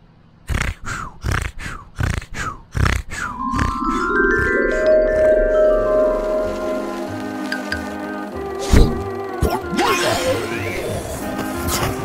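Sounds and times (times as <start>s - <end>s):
man grunting snorts: 0.5s - 3.3s
mallet percussion music: 3.3s - 8.0s.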